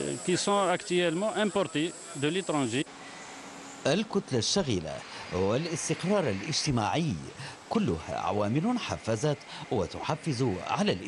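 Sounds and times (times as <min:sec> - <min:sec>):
man speaking: 0:00.0 - 0:02.9, 0:03.9 - 0:11.0
faint steady hiss: 0:00.0 - 0:11.0.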